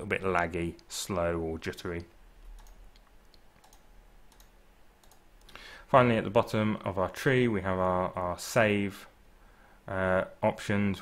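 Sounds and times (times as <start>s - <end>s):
computer mouse clicks: 2.0s - 5.6s.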